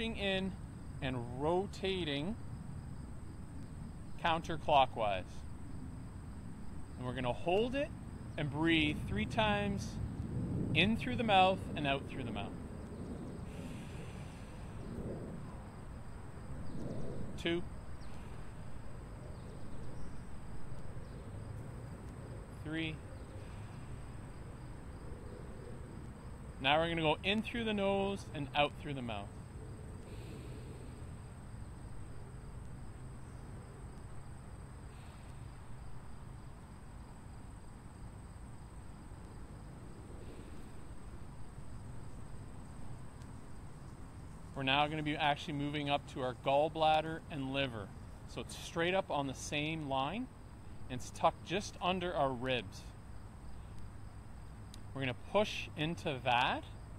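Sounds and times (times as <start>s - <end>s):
low background rumble: 0.0s - 48.4s
high-pitched insect trill: 5.3s - 45.0s
person breathing deeply: 13.4s - 15.2s, 30.0s - 31.3s, 34.8s - 35.6s, 40.2s - 41.0s.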